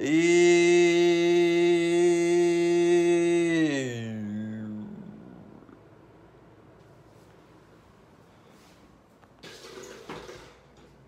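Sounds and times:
person holding long vowel: 0.0 - 5.8.

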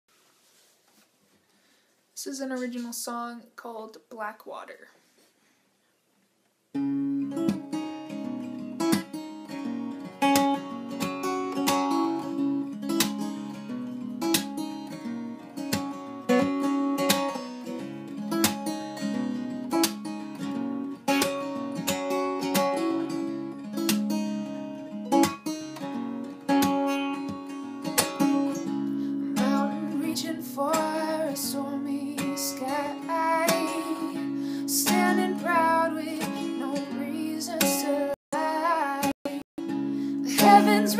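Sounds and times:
acoustic guitar picking chords: 6.7 - 40.9
woman singing: 28.5 - 39.5, 40.1 - 40.9.

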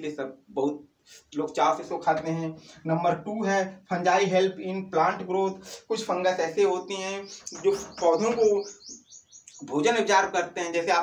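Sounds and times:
man speaking: 0.0 - 8.8, 9.5 - 11.0
bird chirping: 6.1 - 10.3.

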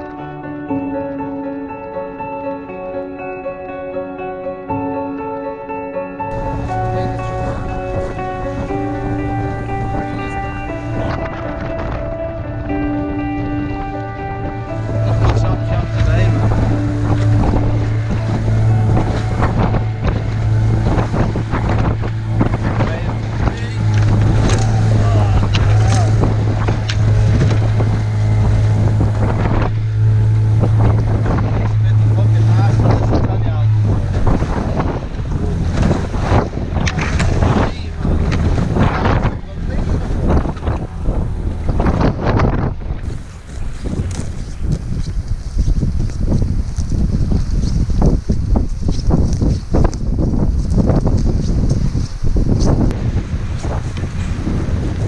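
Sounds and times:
outboard motor humming: 6.3 - 55.0
wind buffeting microphone: 6.3 - 55.0
choppy water against hull: 14.5 - 55.0.

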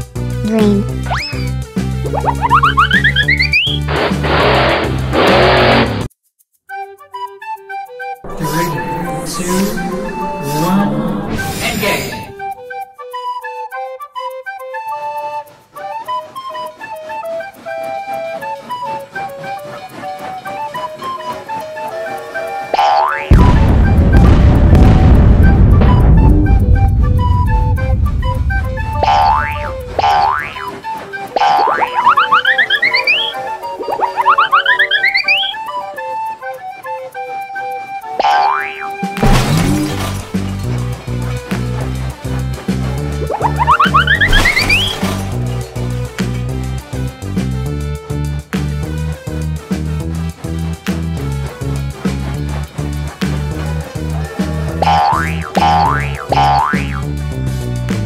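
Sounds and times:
cartoon background music: 0.0 - 6.0, 6.7 - 58.0
short rising chirps: 1.0 - 4.8, 31.4 - 35.7
rising boing glides: 1.0 - 6.1, 22.8 - 35.6, 38.2 - 41.8, 43.2 - 45.5, 54.8 - 57.2.

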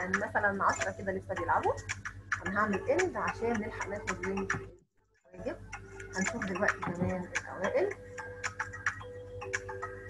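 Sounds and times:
ticking game background music: 0.0 - 10.0.

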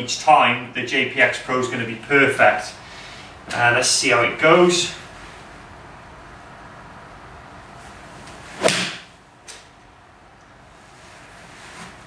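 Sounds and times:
golf club striking ball: 8.6 - 9.7.

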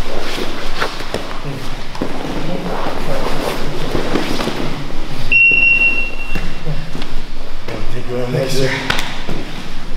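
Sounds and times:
rustle of grappling on mat: 0.0 - 5.3
high-pitched electronic beep: 5.3 - 6.5.

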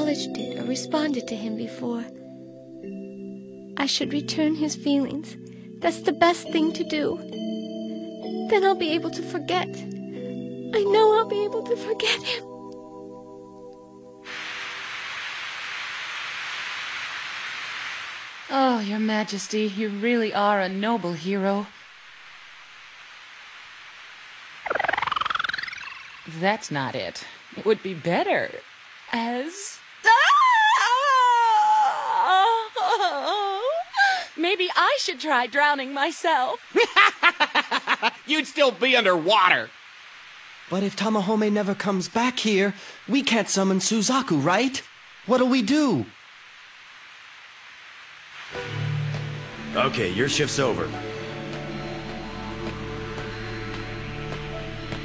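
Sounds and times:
faint hiss: 0.0 - 55.0
high warbling squeal rising: 24.5 - 26.3.

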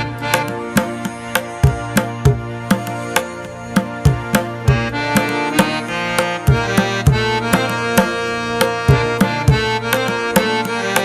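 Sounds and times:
instrumental background music: 0.0 - 11.0.

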